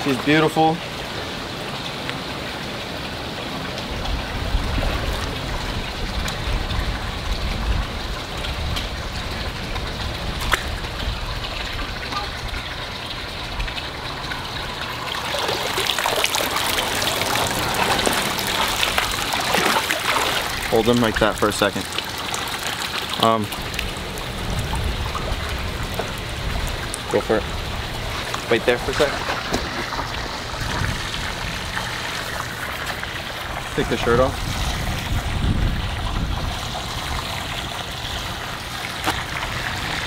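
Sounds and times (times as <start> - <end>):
trickling water: 0.0 - 40.0
fish splashing in water: 9.0 - 33.5.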